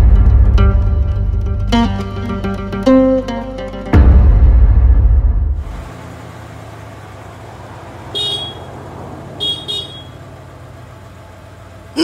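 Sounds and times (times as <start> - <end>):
vehicle engine running: 0.0 - 12.0
deep boom: 4.0 - 5.7
horn toots: 8.1 - 8.8, 9.4 - 10.2.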